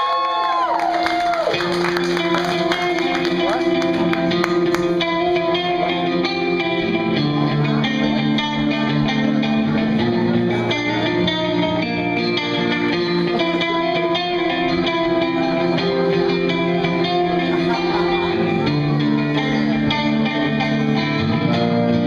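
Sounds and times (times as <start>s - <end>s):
electric guitars playing rock chords: 0.6s - 22.0s.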